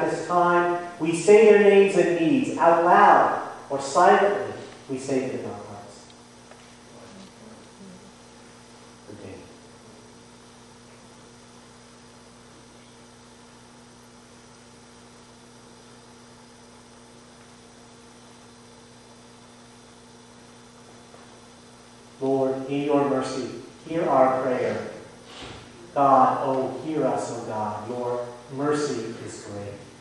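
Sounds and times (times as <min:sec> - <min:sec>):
electrical mains hum: 0:00.0 - 0:30.0.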